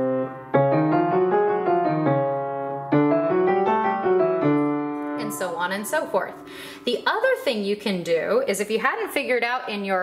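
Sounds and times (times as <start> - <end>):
piano scale in octaves: 0.0 - 7.8
woman speaking: 5.2 - 10.0.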